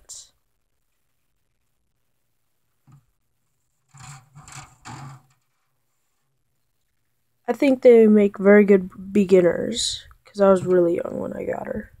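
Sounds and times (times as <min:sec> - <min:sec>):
phone handling rubbing and scraping: 0:02.9 - 0:05.8.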